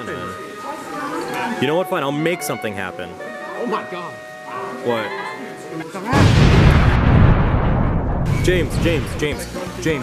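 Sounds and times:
explosion boom and rumble: 6.2s - 9.4s.

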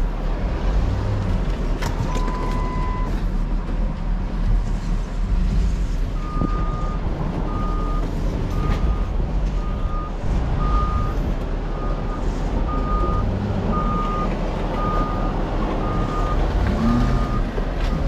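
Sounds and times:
heavy low engine rumble: 0.0s - 18.0s
reversing alarm beeps: 2.2s - 3.1s, 6.2s - 16.4s, 17.1s - 17.4s.

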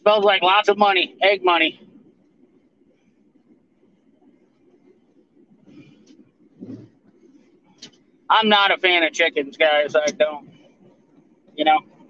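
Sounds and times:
road and engine rumble: 4.2s - 12.0s.

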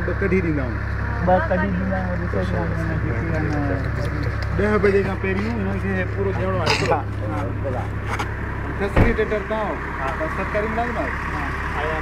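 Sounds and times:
men's voices: 0.0s - 12.0s
vehicle engine idling: 0.0s - 12.0s
sharp thump: 8.9s - 9.3s.

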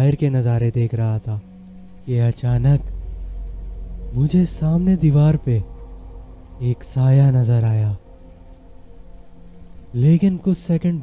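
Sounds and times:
faint steady hum: 0.0s - 11.0s
rain falling: 0.0s - 11.0s.

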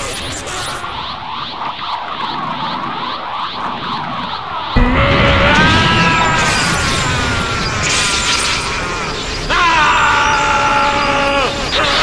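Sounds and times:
sudden energy burst: 3.8s - 10.4s
swirling whoosh of charging energy: 5.6s - 9.5s.

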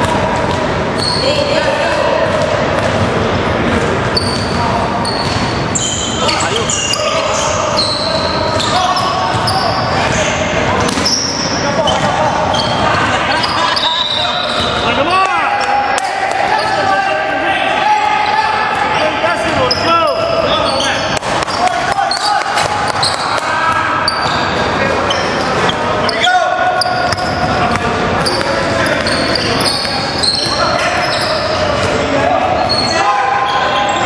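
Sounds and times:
sneakers squeaking: 0.0s - 16.9s, 18.2s - 34.0s
indistinct voices echoing: 0.0s - 34.0s.

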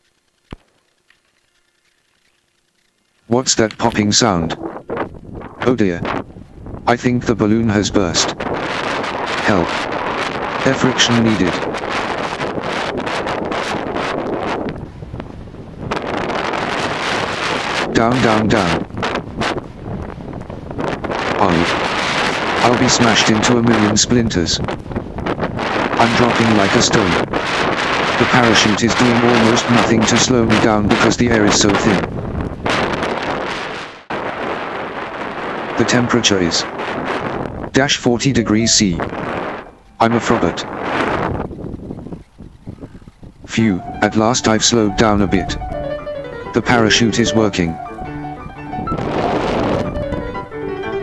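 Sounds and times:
wind buffeting microphone: 3.3s - 51.0s.

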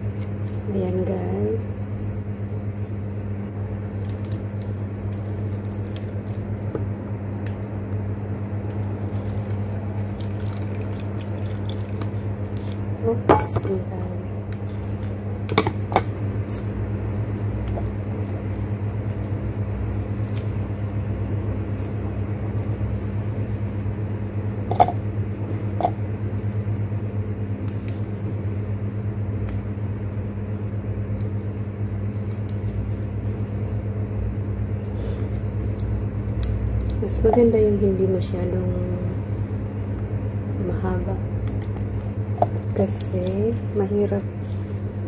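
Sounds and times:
low machine hum: 0.0s - 45.0s
plastic wrapper crinkling: 3.9s - 7.6s, 8.6s - 12.9s, 29.4s - 33.6s.

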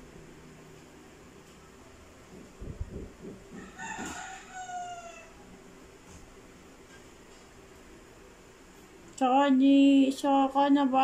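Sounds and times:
rooster crowing: 3.5s - 5.6s.

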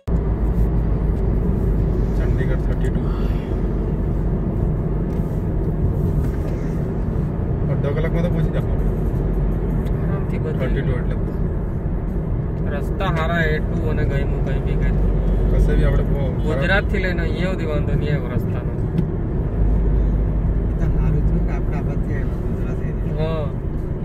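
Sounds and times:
car road and engine noise: 0.0s - 24.0s.

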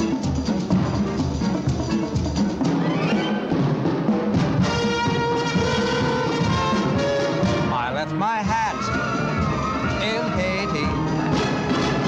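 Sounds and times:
drums and percussion: 0.0s - 12.0s
orchestral dance music: 2.6s - 12.0s
brass holding long notes: 4.6s - 12.0s.

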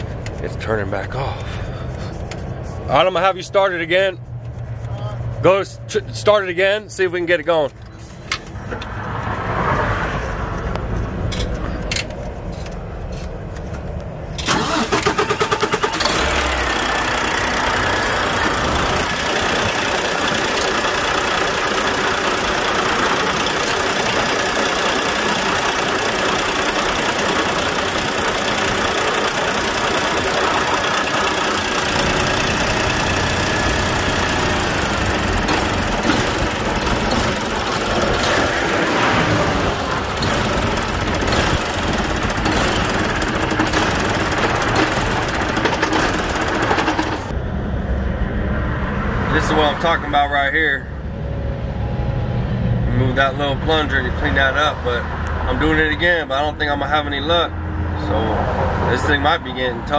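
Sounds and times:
diesel engine cranking and starting: 11.2s - 47.4s
diesel engine idling: 14.1s - 47.4s.

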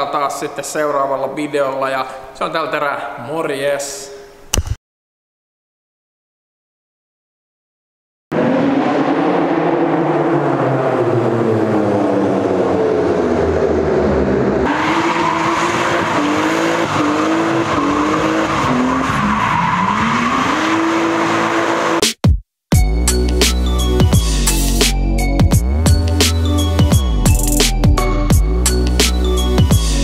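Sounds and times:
car engine revving: 8.3s - 22.0s.

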